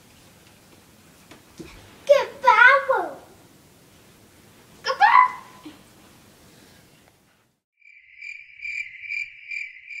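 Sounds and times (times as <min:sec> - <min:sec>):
crickets chirping: 0:07.8 - 0:10.0.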